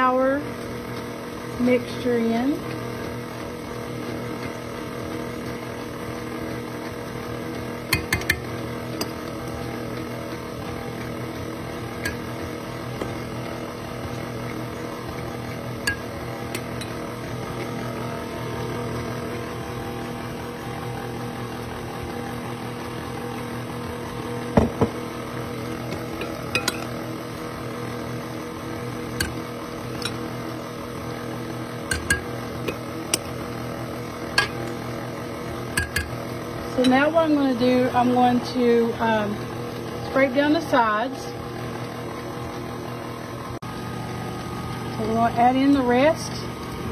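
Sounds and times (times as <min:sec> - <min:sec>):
stand mixer motor running: 0:00.0 - 0:46.9.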